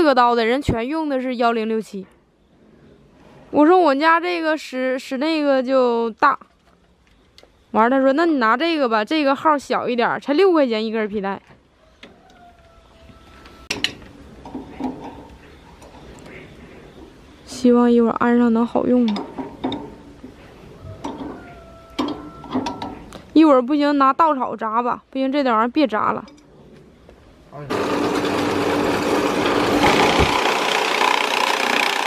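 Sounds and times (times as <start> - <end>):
constant hum: 6.1 - 27.8
chaff cutter machine running: 27.6 - 32.0.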